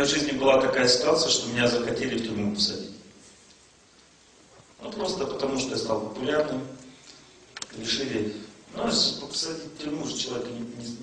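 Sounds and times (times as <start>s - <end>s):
man speaking: 0.0s - 3.0s, 4.8s - 6.8s, 7.6s - 11.0s
faint room tone hiss: 0.0s - 11.0s.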